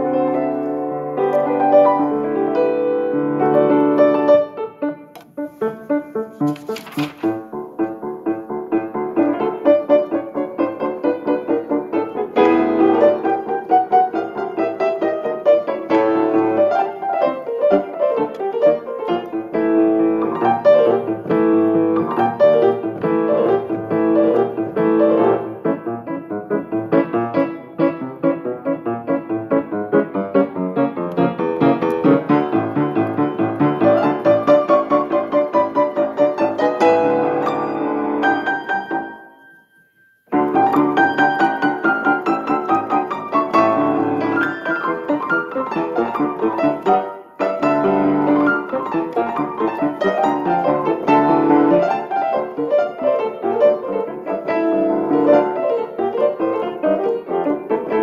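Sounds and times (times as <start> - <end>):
fast solo piano: 0.0 - 58.0.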